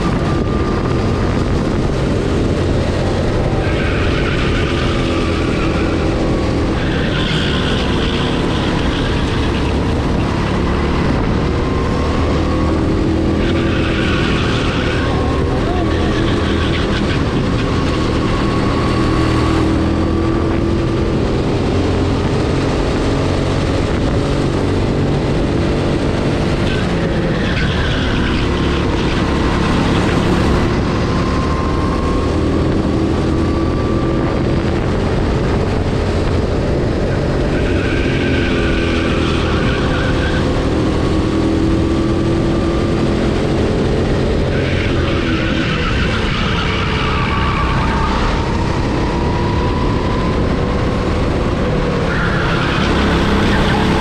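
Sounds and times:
racing kart engine: 0:00.0 - 0:54.0.

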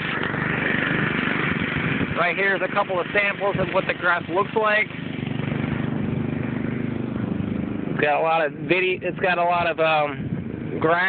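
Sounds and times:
lawn mower engine droning: 0:00.0 - 0:11.0.

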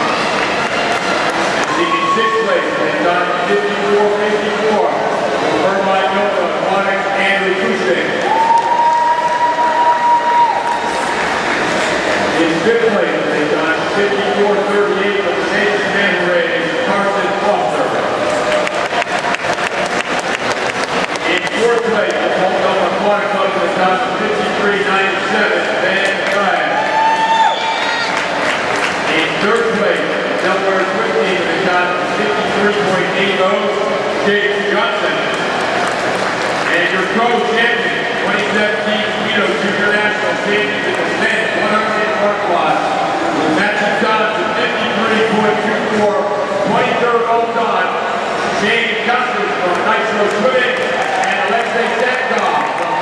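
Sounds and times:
audience applauding: 0:00.0 - 0:01.9, 0:18.2 - 0:22.2, 0:26.0 - 0:31.0, 0:35.3 - 0:37.4, 0:49.7 - 0:53.0
man announcing over public address: 0:01.6 - 0:08.5, 0:12.3 - 0:18.3, 0:21.2 - 0:27.1, 0:29.0 - 0:35.5, 0:36.6 - 0:53.0.

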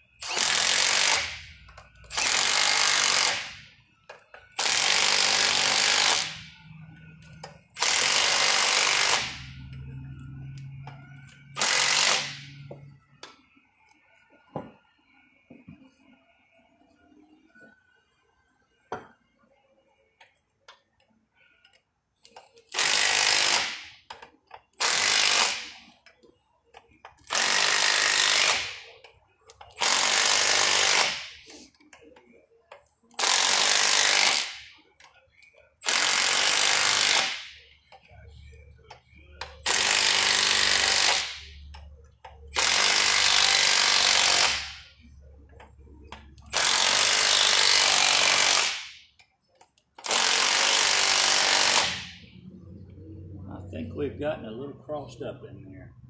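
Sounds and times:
impact wrench hammering: 0:00.2 - 0:06.6, 0:07.3 - 0:09.7, 0:10.8 - 0:13.4, 0:18.9 - 0:19.1, 0:22.3 - 0:25.9, 0:26.7 - 0:31.5, 0:33.1 - 0:34.8, 0:35.8 - 0:38.1, 0:38.9 - 0:41.8, 0:42.5 - 0:44.9, 0:46.1 - 0:52.3.

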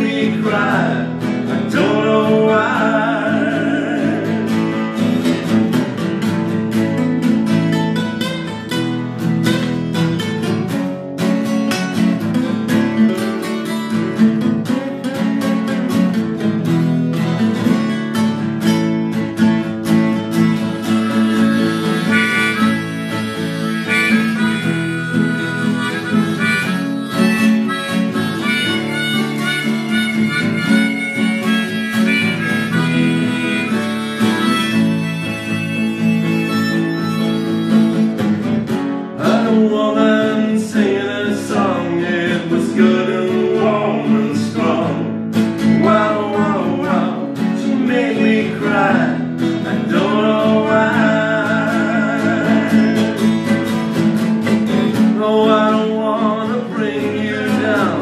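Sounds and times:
acoustic guitars strumming chords: 0:00.0 - 0:58.0
harmonica solo: 0:20.4 - 0:38.6.

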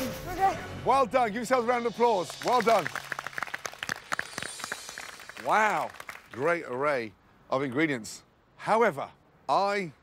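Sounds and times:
people clapping: 0:02.2 - 0:06.8.

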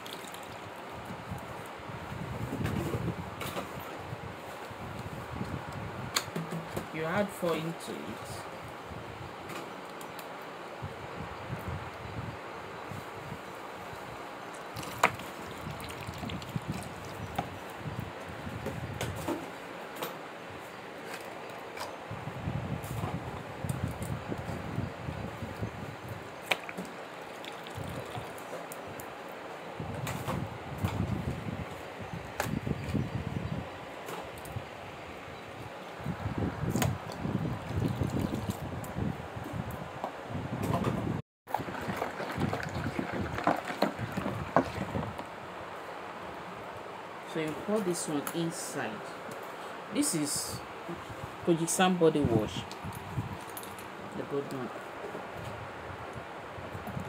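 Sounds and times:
thick liquid sloshing in bowl: 0:14.7 - 0:17.4, 0:26.6 - 0:28.5, 0:41.5 - 0:45.2
plastic bottles clicking: 0:41.7 - 0:44.8.

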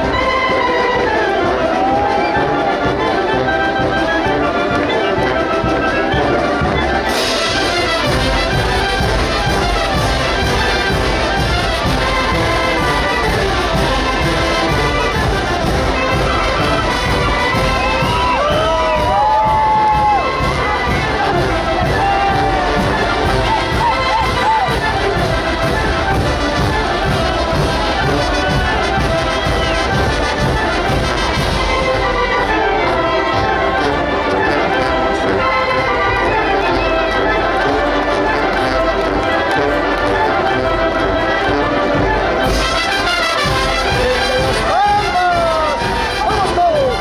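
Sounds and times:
crowd cheering: 0:00.0 - 0:47.0
wind band playing dance music: 0:00.0 - 0:47.0.

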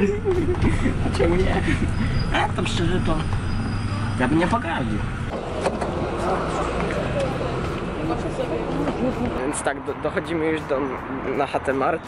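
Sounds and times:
road traffic rumble: 0:00.0 - 0:12.0
indistinct voices: 0:02.1 - 0:12.0.

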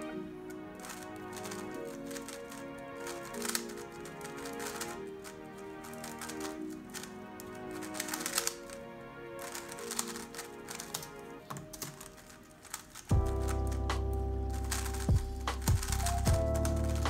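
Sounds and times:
background music: 0:00.0 - 0:17.0
plastic puzzle cube clicking: 0:00.5 - 0:08.8, 0:09.4 - 0:17.0.

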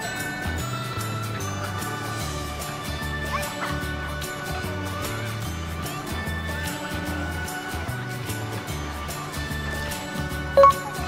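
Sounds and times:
music with beat and bass: 0:10.6 - 0:11.0.

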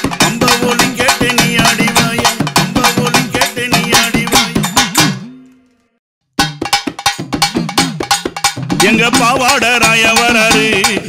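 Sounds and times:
fast drum strokes: 0:00.0 - 0:05.3, 0:06.4 - 0:11.0.

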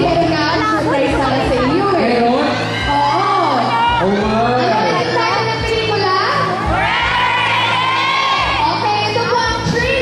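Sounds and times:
amplified music: 0:00.0 - 0:10.0
crowd noise: 0:00.0 - 0:10.0.

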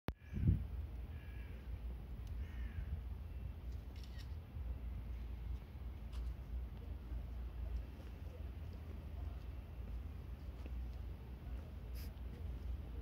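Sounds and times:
steady low rumble: 0:00.1 - 0:13.0
crow cawing: 0:00.2 - 0:00.5, 0:01.1 - 0:01.7, 0:02.4 - 0:02.9.

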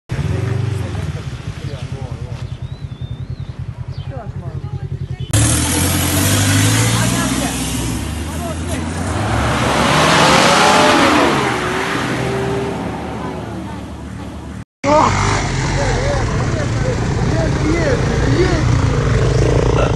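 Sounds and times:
people talking: 0:00.1 - 0:02.6, 0:04.0 - 0:09.4, 0:12.2 - 0:19.9
off-road vehicles driving past: 0:00.1 - 0:19.9.

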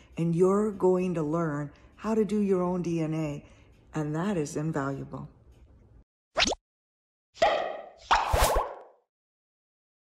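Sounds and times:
quick falling swish: 0:07.4 - 0:09.0.

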